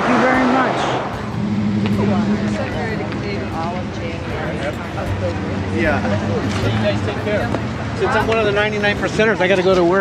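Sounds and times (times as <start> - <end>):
car passing: 0.0 - 10.0
faint indistinct voices: 0.0 - 10.0
road noise hum: 0.0 - 10.0.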